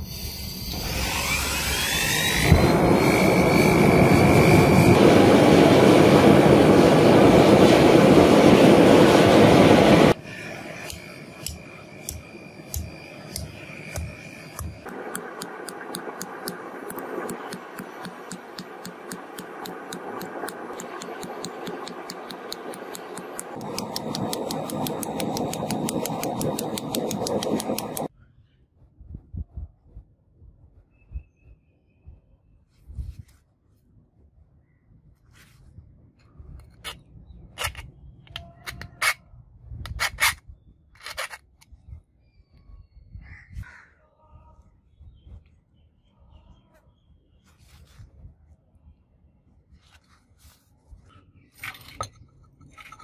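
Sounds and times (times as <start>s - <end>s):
torch flame burning: 0.6s - 28.1s.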